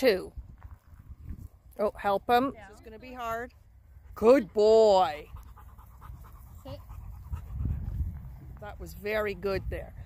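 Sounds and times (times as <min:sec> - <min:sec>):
dog panting: 0:03.4 - 0:10.0.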